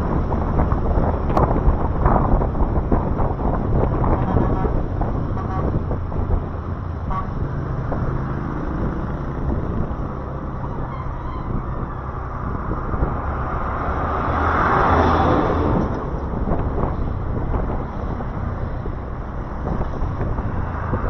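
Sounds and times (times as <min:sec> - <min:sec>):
engine and road rumble: 0:00.0 - 0:21.0
truck passing: 0:00.0 - 0:21.0
wind on microphone: 0:00.0 - 0:21.0.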